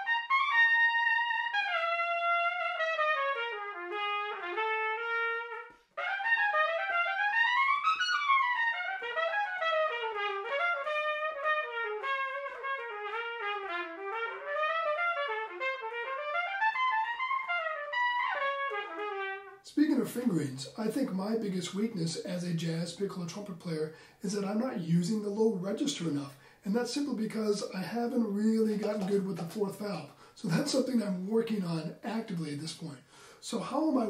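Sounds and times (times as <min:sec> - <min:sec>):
piccolo trumpet playing jazz: 0:00.0 - 0:34.0.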